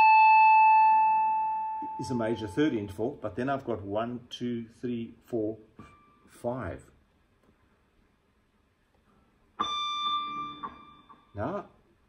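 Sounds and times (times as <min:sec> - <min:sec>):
electric guitar high note ringing: 0:00.0 - 0:03.0, 0:09.6 - 0:11.6.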